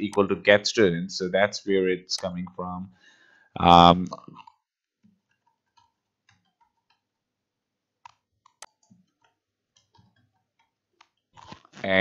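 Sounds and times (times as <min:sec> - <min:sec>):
keyboard and mouse clicks: 0:04.3 - 0:07.1, 0:08.0 - 0:11.7.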